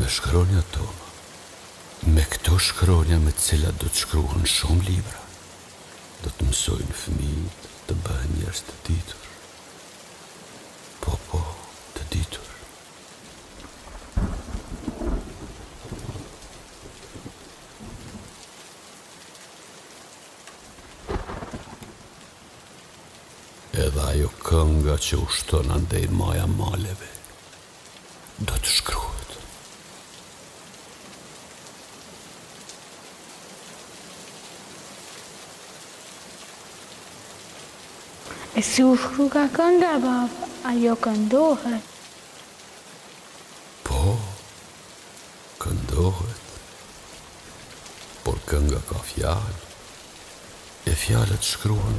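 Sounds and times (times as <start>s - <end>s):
man's voice: 0.0s - 1.1s, 2.0s - 5.3s, 6.2s - 9.4s, 11.0s - 12.6s, 23.7s - 27.3s, 28.3s - 29.6s, 43.9s - 44.5s, 45.6s - 46.7s, 48.3s - 49.8s, 50.9s - 51.9s
steady rain: 0.0s - 51.9s
thunder rumbling: 13.7s - 18.2s, 21.0s - 21.9s.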